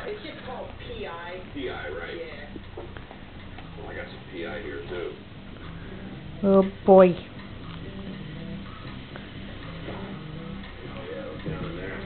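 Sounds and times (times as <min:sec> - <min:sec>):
television music with ticking beat: 0:00.0 - 0:12.0.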